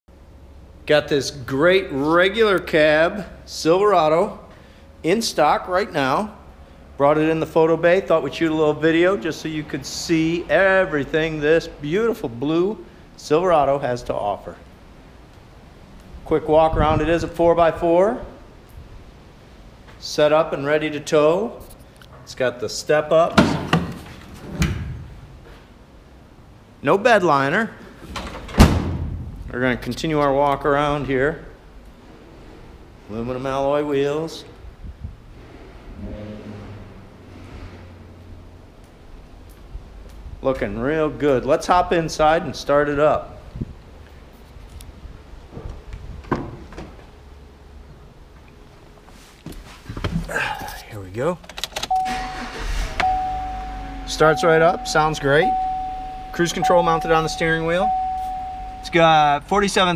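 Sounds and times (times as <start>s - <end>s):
soft rustling: 48.4s - 50.9s
truck engine starting and idling: 50.3s - 59.9s
steady high tone: 51.9s - 59.9s
steady low hum: 52.0s - 59.9s.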